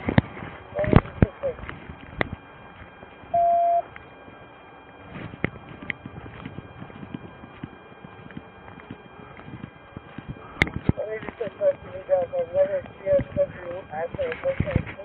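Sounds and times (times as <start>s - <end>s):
electronic beep: 0.7s - 1.6s, 3.3s - 3.9s
equipment clicks and rustles: 3.9s - 11.5s.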